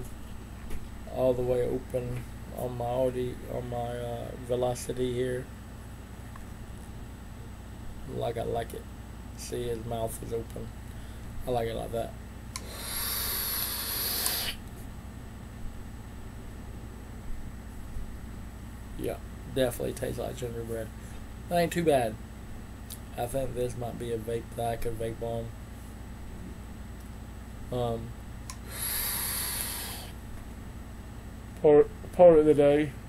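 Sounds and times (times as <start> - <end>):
hiss of air through vape: 12.6 - 14.6, 28.6 - 30.2.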